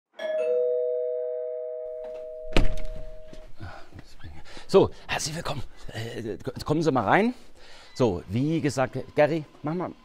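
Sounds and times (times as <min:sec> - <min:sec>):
two-tone doorbell chime: 0:00.2 - 0:03.5
door opening thump: 0:02.1 - 0:03.4.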